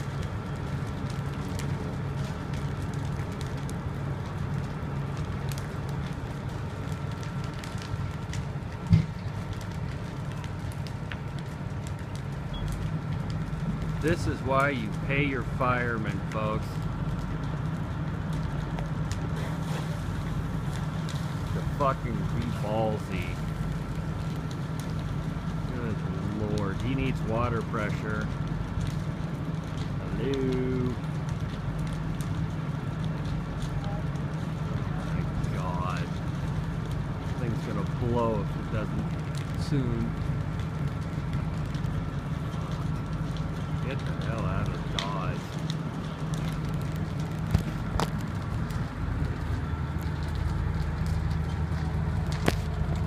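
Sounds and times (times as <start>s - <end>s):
fire crackling and popping: 0.0s - 53.0s
fire engines rumbling: 0.0s - 53.0s.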